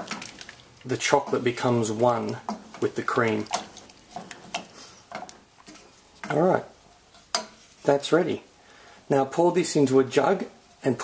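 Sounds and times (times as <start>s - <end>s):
spatula scraping saucepan: 1.1s - 8.1s.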